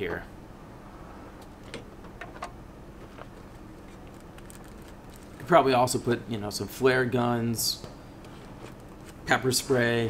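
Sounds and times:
steady low hum: 0.0s - 10.0s
light rustling of equipment: 1.4s - 5.6s, 8.2s - 9.9s.

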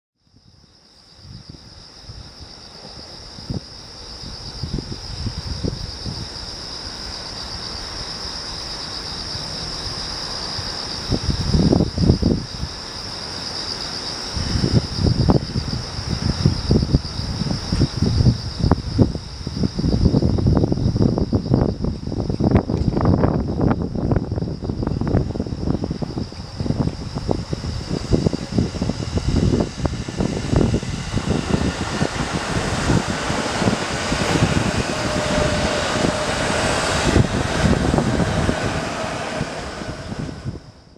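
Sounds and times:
faint train whine: 0.2s - 40.9s
train rushing rumble: 1.4s - 40.9s
train wheels clattering on rails: 26.3s - 40.6s.

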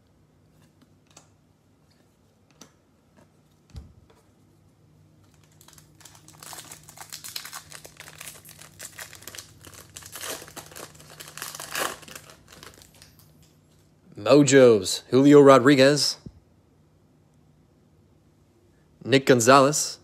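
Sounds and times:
foil wrapper crinkling: 5.2s - 13.3s.

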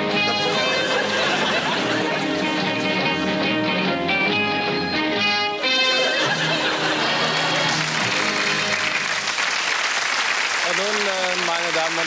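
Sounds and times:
theme music: 0.0s - 9.8s
audience applauding: 0.2s - 3.3s, 5.6s - 12.0s
man speaking: 10.6s - 12.0s.

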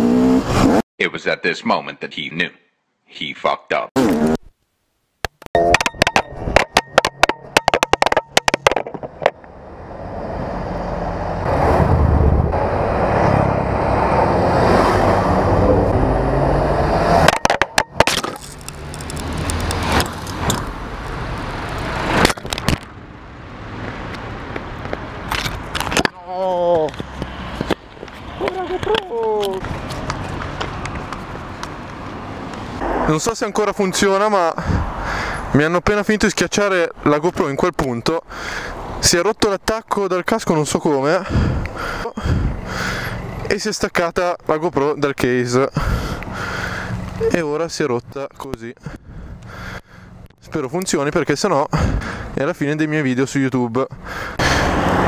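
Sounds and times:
sharp knocks and cracks: 5.3s - 9.4s
camera clattering across asphalt: 6.6s - 9.5s, 17.3s - 23.0s, 23.8s - 26.2s, 26.8s - 32.7s
cars driving past: 9.3s - 17.6s, 18.5s - 25.9s, 26.9s - 35.6s, 54.0s - 55.0s.

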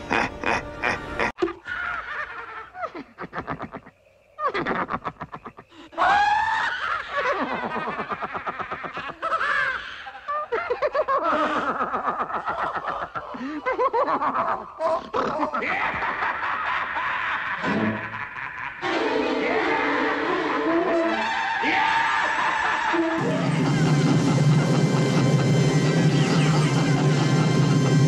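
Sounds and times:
cartoon horse laughing: 0.0s - 21.3s
cartoon man laughing: 0.0s - 28.0s.

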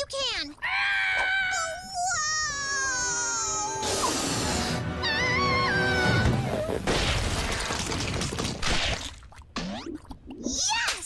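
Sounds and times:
music: 3.7s - 6.8s
crashing and splattering: 6.8s - 9.4s
bubble bursting: 7.7s - 10.6s.

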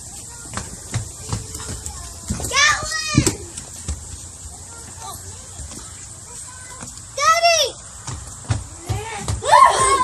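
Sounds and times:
child squealing: 9.4s - 10.0s.

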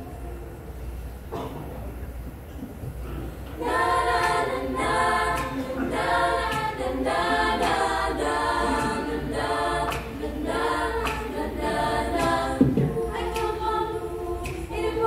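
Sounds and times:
girls choir singing a cappella: 3.5s - 15.0s.

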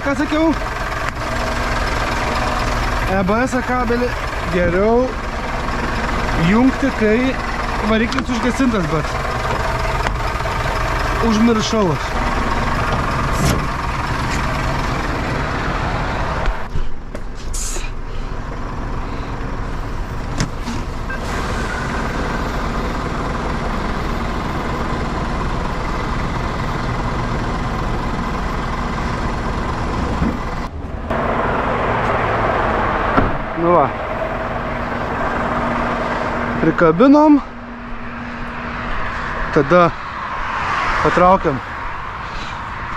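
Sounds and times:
diesel engine idling: 0.0s - 42.9s.

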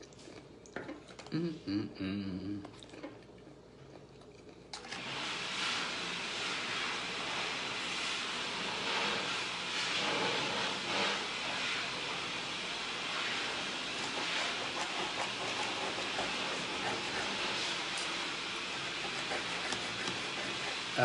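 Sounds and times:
loud steady rushing hiss: 5.0s - 21.0s.

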